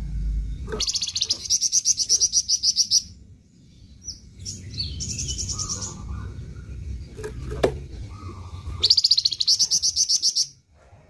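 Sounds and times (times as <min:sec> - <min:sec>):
songbird singing high notes: 0:00.6 - 0:03.2.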